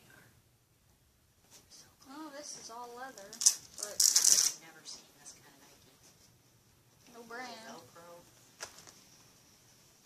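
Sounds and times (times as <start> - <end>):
shoelace rattling rustle: 3.2 - 4.6.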